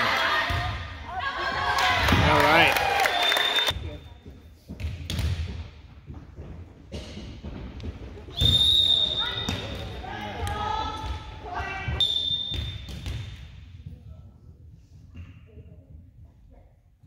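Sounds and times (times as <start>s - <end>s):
referee's whistle blowing: 3.0s - 3.7s, 8.3s - 9.7s, 12.0s - 12.9s.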